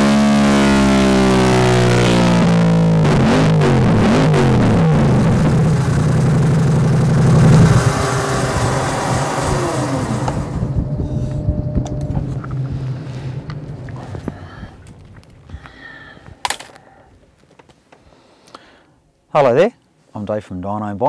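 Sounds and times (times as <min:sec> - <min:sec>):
motorcycle engine revving: 0:00.0 - 0:15.6.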